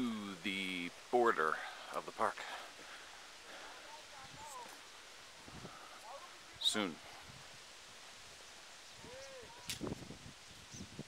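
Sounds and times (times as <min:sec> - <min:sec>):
faint outdoor hiss: 0:00.0 - 0:11.0
sharp click: 0:09.7 - 0:09.9.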